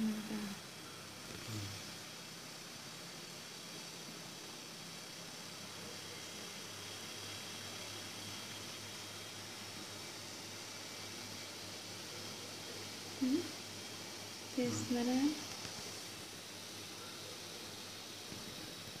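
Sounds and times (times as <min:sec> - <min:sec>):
faint low hum: 0:00.0 - 0:19.0
steady background hiss: 0:00.0 - 0:19.0.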